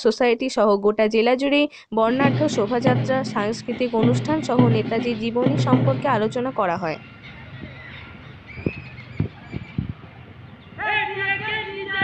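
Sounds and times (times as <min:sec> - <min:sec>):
faint outdoor background: 0:00.0 - 0:12.0
dull low thumps: 0:02.1 - 0:10.8.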